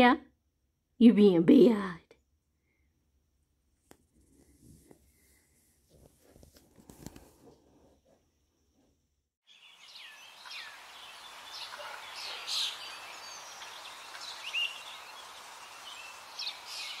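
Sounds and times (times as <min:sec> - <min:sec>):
birds chirping and whistling: 0:09.5 - 0:17.0
outdoor ambience hiss: 0:09.5 - 0:17.0.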